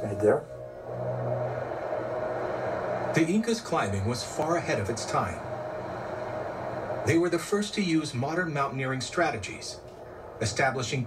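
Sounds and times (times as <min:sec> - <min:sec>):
steady low rumble with hum: 0:00.0 - 0:11.0.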